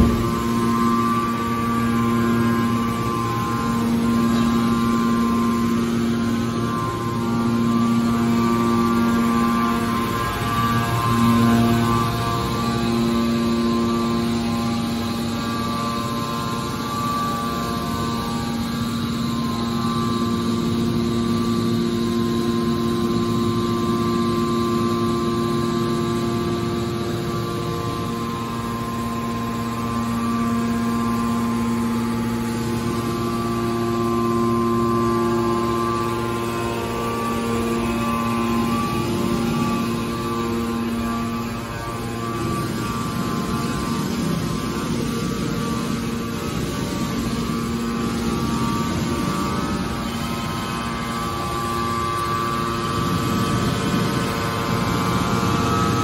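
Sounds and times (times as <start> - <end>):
hydraulic pump motor humming: 0.0 - 56.0.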